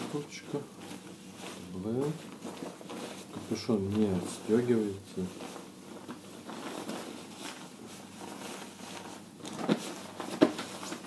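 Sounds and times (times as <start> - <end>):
nylon fabric rustling: 0.0 - 11.0.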